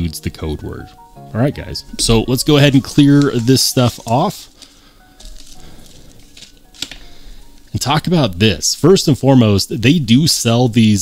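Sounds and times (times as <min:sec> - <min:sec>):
plastic bags rustling: 0:01.7 - 0:08.4.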